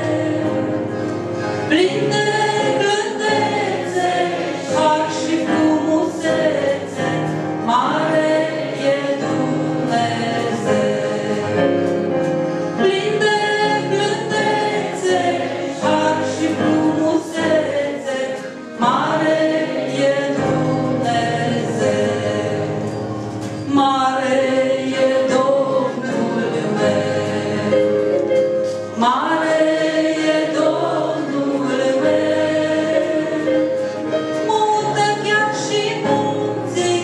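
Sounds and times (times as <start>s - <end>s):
woman singing a hymn: 0.0s - 0.9s, 1.6s - 11.8s, 12.8s - 22.9s, 23.7s - 28.2s, 28.8s - 37.0s.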